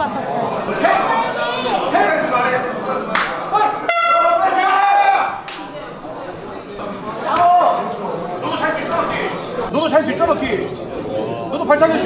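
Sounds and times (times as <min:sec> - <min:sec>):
horn steady high tone: 0:03.8 - 0:04.6.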